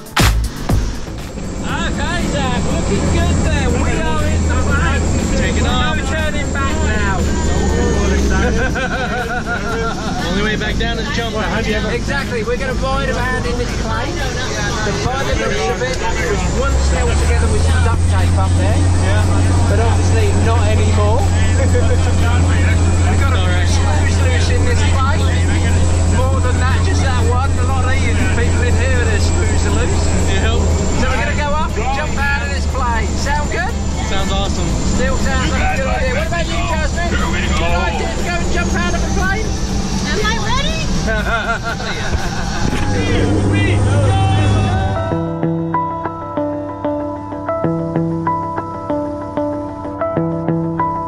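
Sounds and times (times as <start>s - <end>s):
high whine: 0.0s - 33.9s, 34.6s - 45.6s
plane engine drone: 0.0s - 45.6s
voices chattering and laughing: 1.5s - 45.4s.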